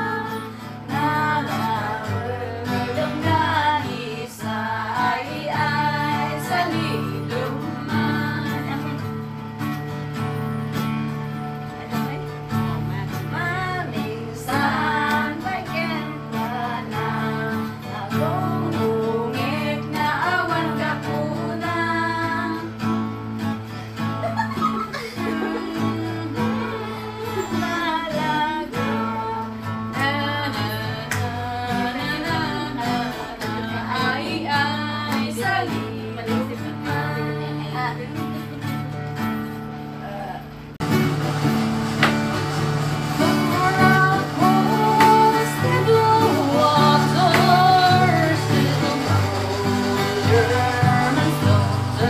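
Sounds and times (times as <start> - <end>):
woman singing: 0.0 - 9.4, 11.6 - 23.2, 24.3 - 40.6, 41.2 - 52.0
strummed acoustic guitar: 0.0 - 52.0.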